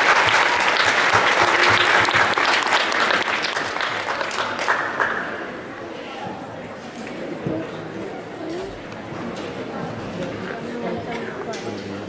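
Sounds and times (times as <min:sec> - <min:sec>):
murmur of many voices: 0:00.0 - 0:12.0.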